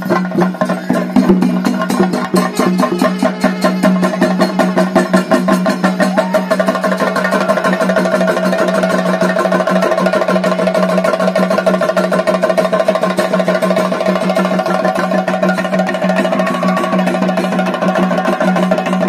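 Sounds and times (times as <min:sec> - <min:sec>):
drums in fast even rhythm: 0:00.0 - 0:19.0.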